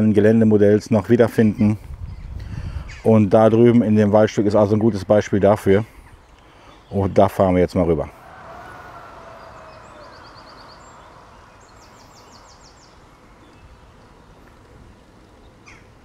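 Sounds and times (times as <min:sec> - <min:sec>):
outdoor background hiss: 0:00.0 - 0:16.0
high bird trills: 0:08.1 - 0:14.6, 0:15.5 - 0:16.0.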